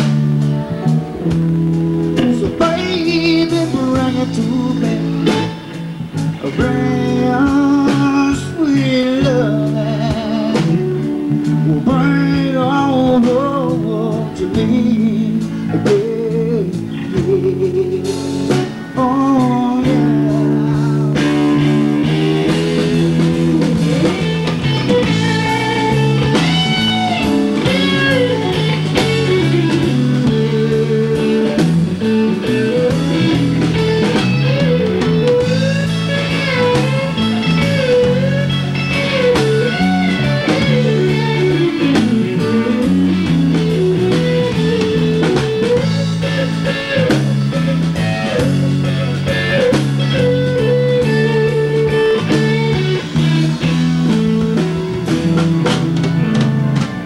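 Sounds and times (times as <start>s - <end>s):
bass notes: 0.0s - 57.0s
drum kit: 0.0s - 57.0s
electric guitar lead: 0.0s - 57.0s
rhythm guitar: 0.0s - 57.0s.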